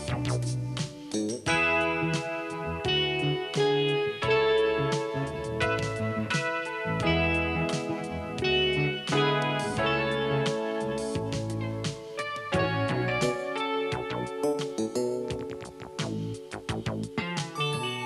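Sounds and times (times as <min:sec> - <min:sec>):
funk synth bass line: 0:00.0 - 0:18.0
guitar synthesiser: 0:00.0 - 0:18.0
keyboard: 0:00.0 - 0:18.0.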